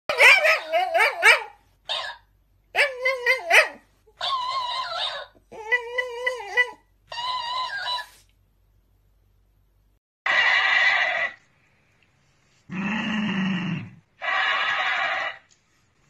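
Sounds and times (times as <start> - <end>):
dog whining and howling: 0.1 - 2.2, 2.8 - 8.2.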